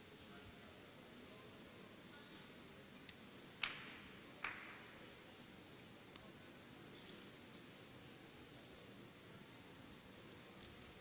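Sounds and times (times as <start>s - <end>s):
small tick: 3.0s - 3.8s, 5.8s - 6.3s.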